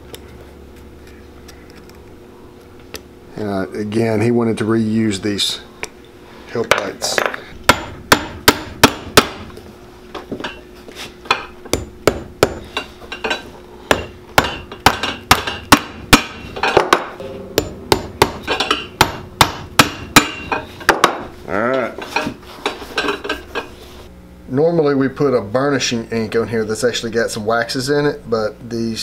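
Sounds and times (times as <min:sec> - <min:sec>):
hammer tapping nails into metal: 0:13.9 - 0:21.2.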